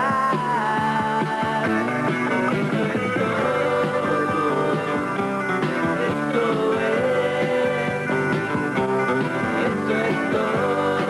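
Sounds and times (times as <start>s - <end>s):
rock band playing: 0.0s - 11.0s
lead guitar bending notes: 1.6s - 11.0s.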